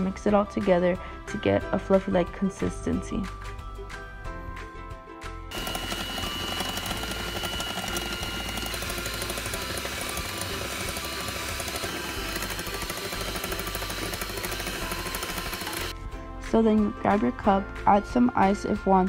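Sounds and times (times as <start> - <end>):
electric whisk whining: 5.5 - 16.0.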